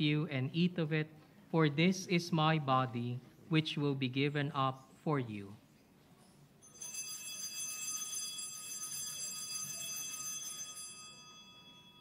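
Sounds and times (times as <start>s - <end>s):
altar bell ringing: 6.6s - 12.0s.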